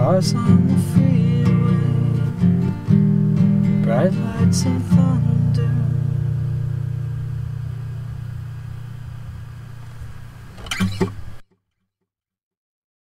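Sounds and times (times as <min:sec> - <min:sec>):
acoustic guitar chord ringing: 0:00.0 - 0:11.4.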